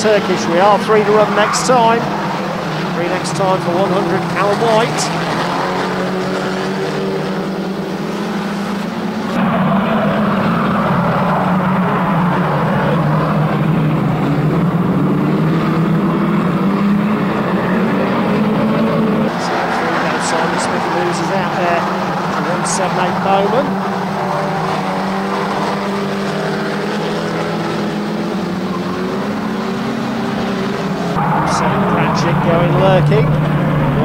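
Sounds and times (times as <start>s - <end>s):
racing car engines droning: 0.0s - 34.0s.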